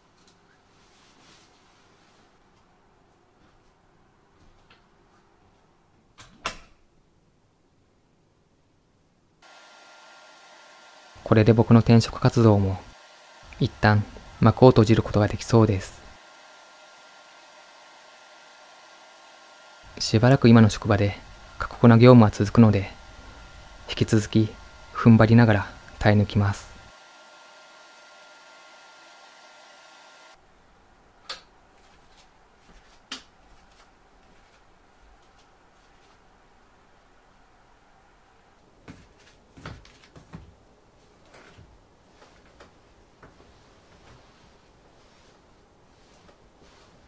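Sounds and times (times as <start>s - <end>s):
hair dryer running: 9.4s - 30.4s.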